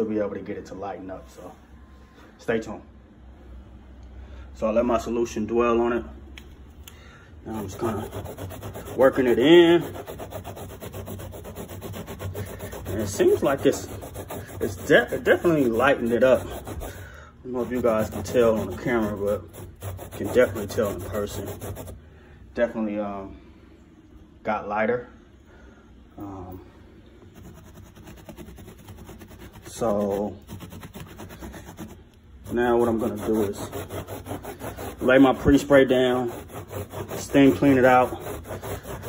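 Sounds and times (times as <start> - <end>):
brush scrubbing carpet: 7.5 - 22.0, 27.3 - 39.0.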